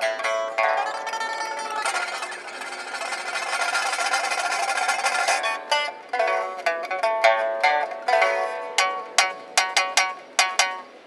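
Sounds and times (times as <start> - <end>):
pipa tremolo: 0.0 - 11.0.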